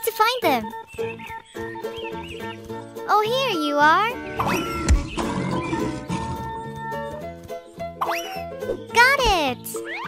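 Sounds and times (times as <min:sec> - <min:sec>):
children's background music: 0:00.0 - 0:10.0.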